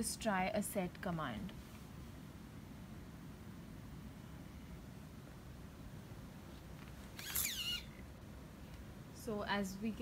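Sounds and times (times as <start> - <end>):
servo motor whining: 7.2 - 7.9.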